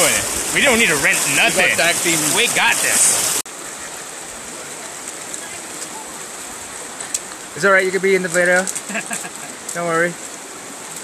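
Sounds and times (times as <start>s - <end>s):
river rushing over rocks: 0.0s - 11.0s.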